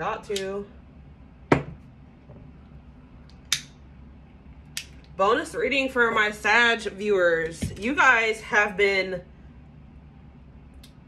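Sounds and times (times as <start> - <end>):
glass jar knocking on wooden desk: 1.5 - 1.8.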